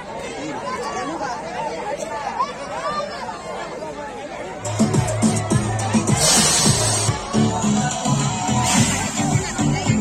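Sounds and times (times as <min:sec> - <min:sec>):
crowd chattering and calling out: 0:00.0 - 0:10.0
dance music with heavy bass: 0:04.6 - 0:10.0.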